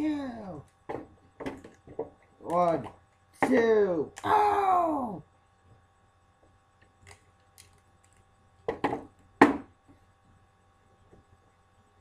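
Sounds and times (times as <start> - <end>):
plastic figures knocking on toy mat: 0.9 - 3.7, 8.7 - 9.7.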